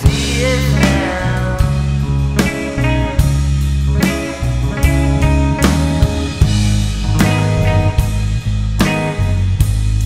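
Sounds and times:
bass guitar: 0:00.0 - 0:10.0
drum and cymbal hits: 0:00.0 - 0:10.0
electric guitar: 0:00.0 - 0:10.0.

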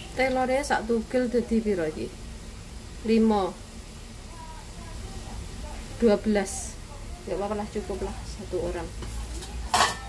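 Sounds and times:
oil sizzling in a frying pan: 0:00.0 - 0:10.0.

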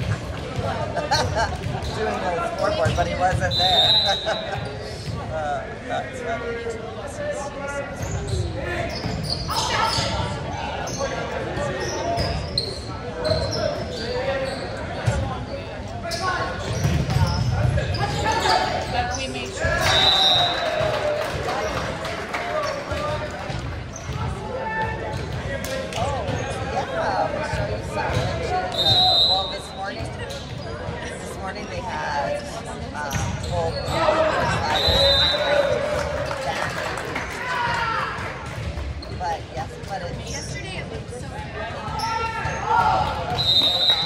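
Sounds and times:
referee's whistle: 0:03.3 - 0:04.6, 0:19.8 - 0:20.8, 0:28.7 - 0:29.8, 0:34.6 - 0:35.7, 0:43.3 - 0:44.0.

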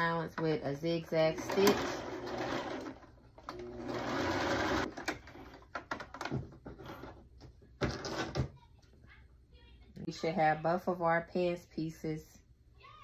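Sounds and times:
sewing machine stitching: 0:01.2 - 0:05.7.

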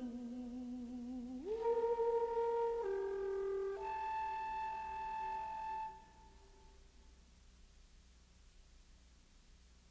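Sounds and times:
contralto singing sustained note: 0:00.0 - 0:06.8
alto flute sustained note: 0:00.0 - 0:07.0.

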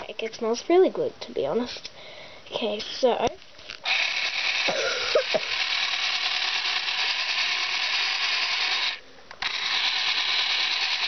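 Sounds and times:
electric stand mixer running: 0:03.9 - 0:11.0.

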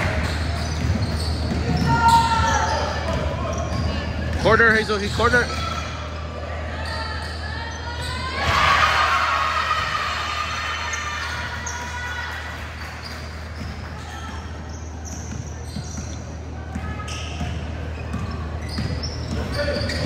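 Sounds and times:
sneaker squeaks: 0:00.0 - 0:08.7, 0:09.8 - 0:20.0
players' voices and shouts: 0:01.6 - 0:12.7.

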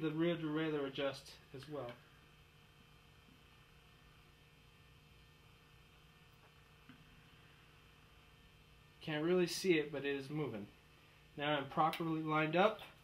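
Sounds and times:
faint low room hum: 0:00.0 - 0:13.0.

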